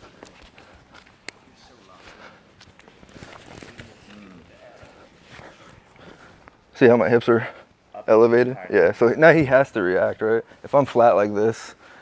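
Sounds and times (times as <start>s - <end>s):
man speaking close by: 6.7s - 11.8s.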